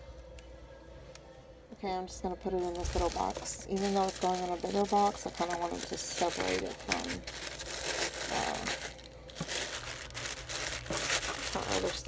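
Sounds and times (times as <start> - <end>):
tissue paper crinkling: 2.6 - 12.0.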